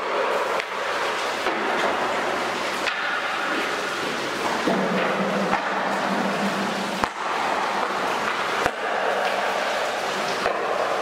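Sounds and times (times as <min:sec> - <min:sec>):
steady hiss: 0:00.0 - 0:11.0
hockey stick striking puck: 0:01.4 - 0:02.1, 0:02.8 - 0:03.5, 0:04.4 - 0:09.5, 0:10.4 - 0:10.8.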